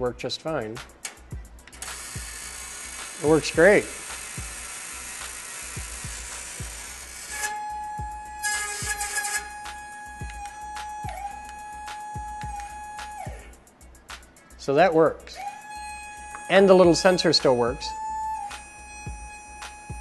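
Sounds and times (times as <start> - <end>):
small motor whining: 1.7 - 13.5, 15.4 - 20.0.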